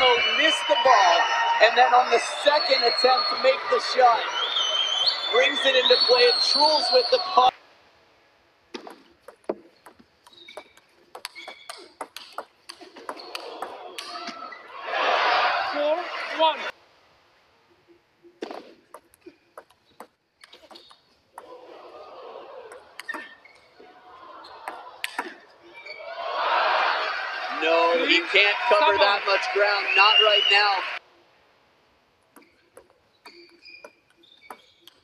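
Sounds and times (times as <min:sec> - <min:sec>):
crowd noise: 0:00.0 - 0:07.6, 0:12.9 - 0:16.8, 0:21.4 - 0:31.1
table tennis ball clicks: 0:08.8 - 0:14.1.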